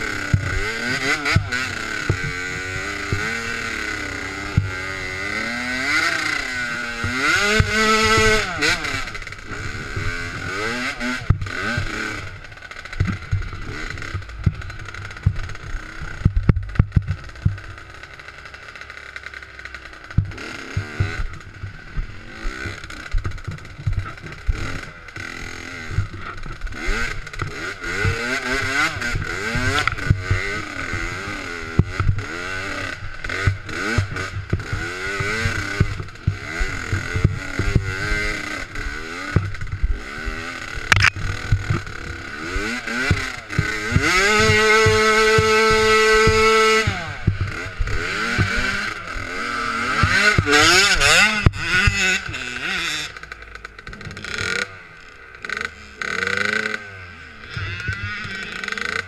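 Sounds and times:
dirt bike engine revving: 0:00.0 - 0:59.0
bike knocking and clattering: 0:06.9 - 0:54.7.

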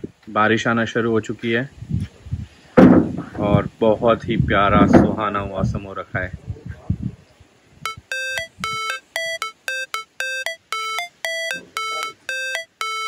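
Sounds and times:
electronic beeper melody: 0:07.9 - 0:13.0.

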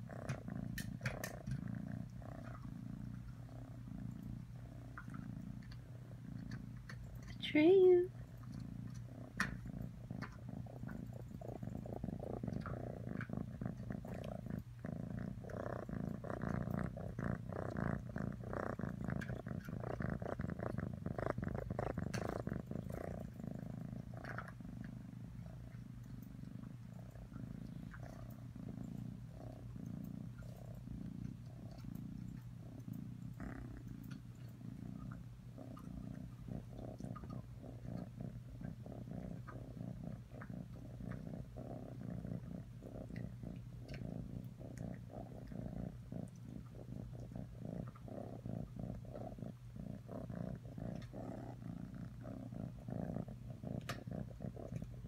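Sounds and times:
kitten purring: 0:00.0 - 0:55.0.

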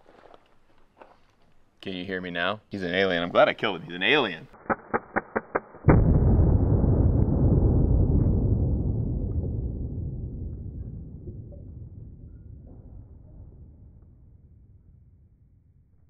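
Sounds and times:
deep dull boom: 0:05.9 - 0:16.0.

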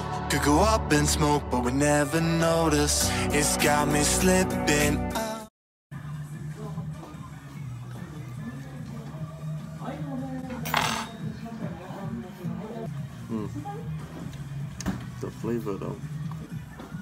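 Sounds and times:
background music: 0:00.0 - 0:17.0
tableware clink: 0:10.6 - 0:11.3.

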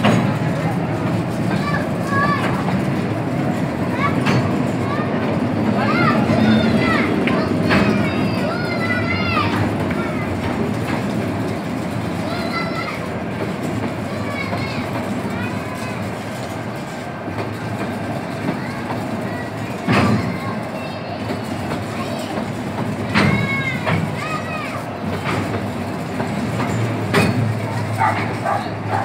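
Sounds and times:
freight train rumbling over bridge: 0:00.0 - 0:29.0.

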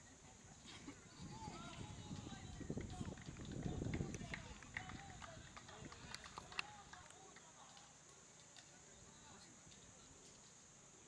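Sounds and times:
faint indistinct voices: 0:00.1 - 0:11.0.

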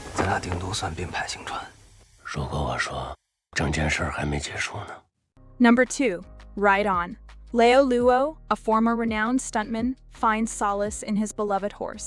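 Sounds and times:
person speaking: 0:00.1 - 0:05.0.

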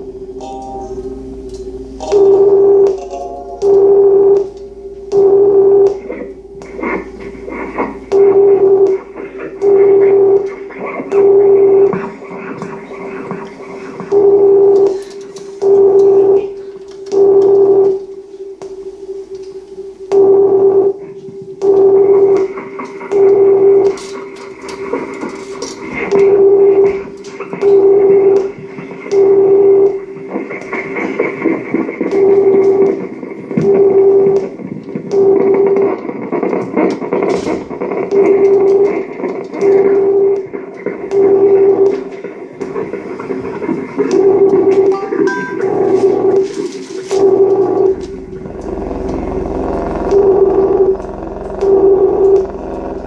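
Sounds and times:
crackling noise bed: 0:00.0 - 0:53.0
electronic drone: 0:00.0 - 0:53.0
loud noisy electronic pulses: 0:00.0 - 0:53.0.

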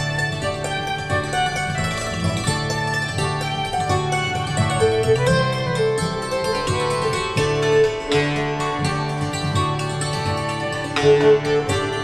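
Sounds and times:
acoustic guitar strumming: 0:00.0 - 0:12.0
fiddle melody: 0:00.0 - 0:12.0
hammered dulcimer: 0:00.0 - 0:12.0.

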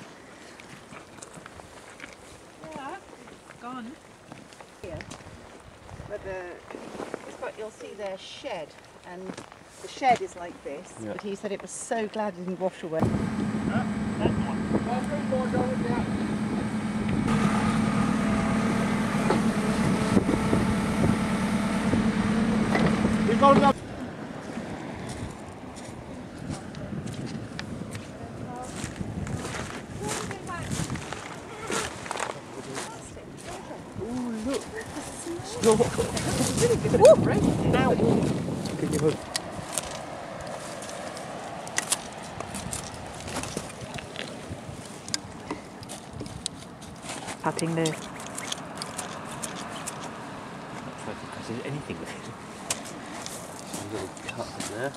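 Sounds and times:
rope and seaweed rustling: 0:00.0 - 0:11.4, 0:23.9 - 0:51.0, 0:52.4 - 0:54.9
diesel engine running: 0:13.0 - 0:24.0
steady background wash: 0:13.0 - 0:28.9.

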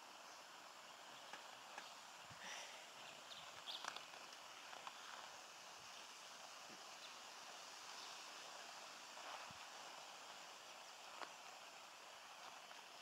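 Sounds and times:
faint outdoor hiss: 0:00.0 - 0:13.0
faint bird chirps: 0:00.1 - 0:04.0.

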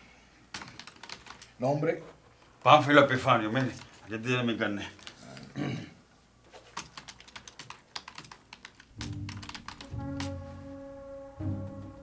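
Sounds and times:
typing on computer keyboard: 0:00.5 - 0:01.6, 0:03.5 - 0:04.0, 0:06.5 - 0:10.4
background music with low bass: 0:09.0 - 0:12.0.

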